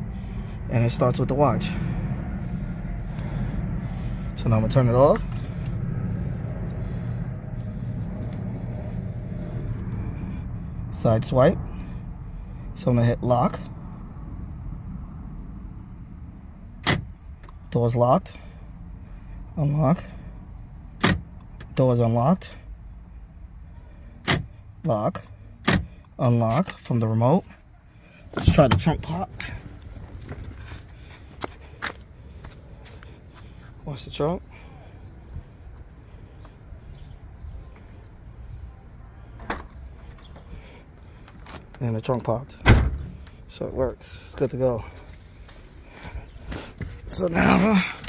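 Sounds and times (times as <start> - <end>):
low steady rumble: 0.0 - 48.0
car door locks clunking: 16.8 - 17.1, 21.0 - 21.3, 24.2 - 24.5.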